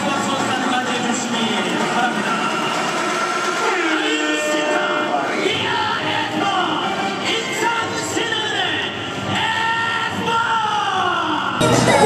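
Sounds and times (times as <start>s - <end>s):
dance music held chord: 11.6s - 12.0s.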